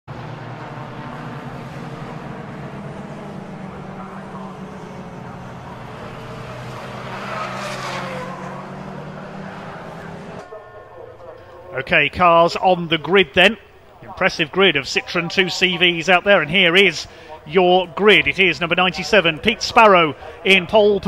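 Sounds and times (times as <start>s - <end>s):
race car passing close: 0.1s - 11.3s
race car engines droning: 0.1s - 21.0s.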